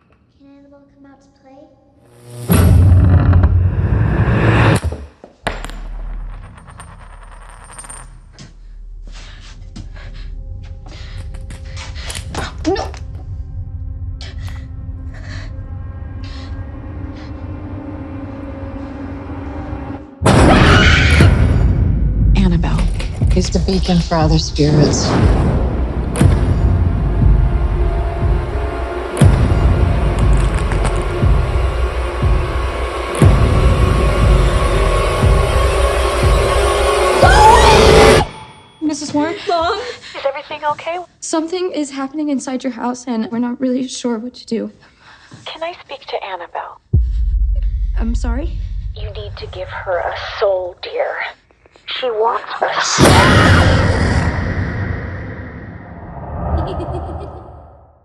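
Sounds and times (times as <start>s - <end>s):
low rumbling drone: 13.0s - 20.5s, 46.9s - 49.5s, 53.0s - 58.0s.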